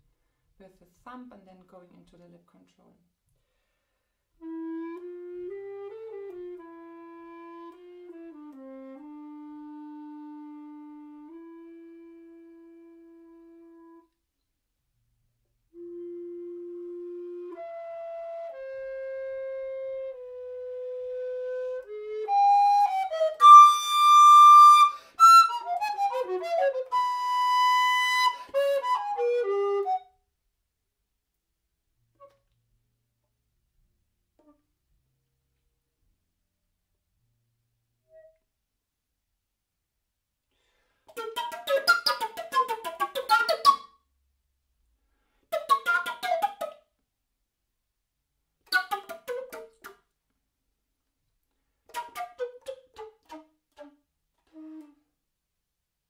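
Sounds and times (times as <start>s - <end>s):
recorder playing: 15.8s - 30.1s, 41.1s - 43.9s.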